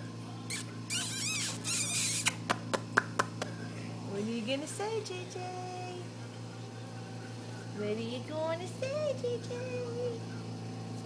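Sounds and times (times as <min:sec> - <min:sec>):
steady low hum: 0:00.0 - 0:11.0
child squeaking: 0:00.5 - 0:02.4.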